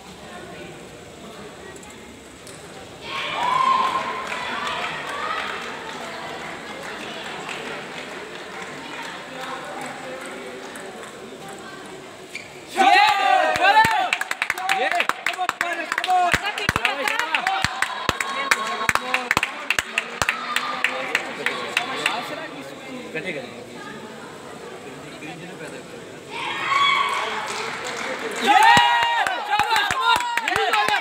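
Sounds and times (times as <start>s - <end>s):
murmur of sports hall: 0.0s - 31.0s.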